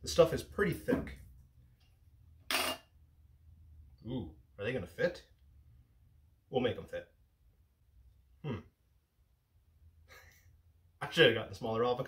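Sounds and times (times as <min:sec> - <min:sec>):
metal jar lid clinking: 0:02.5 - 0:02.9.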